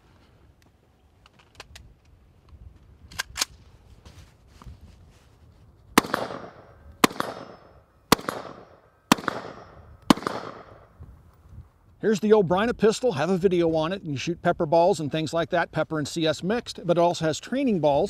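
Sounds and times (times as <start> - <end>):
gun handling clicks: 0.6 - 3.6
rifle shots with echo: 6.0 - 10.9.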